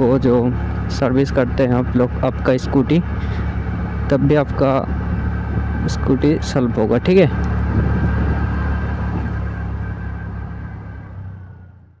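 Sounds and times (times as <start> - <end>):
road and wind noise: 0.0 - 12.0
scooter engine running: 0.0 - 12.0.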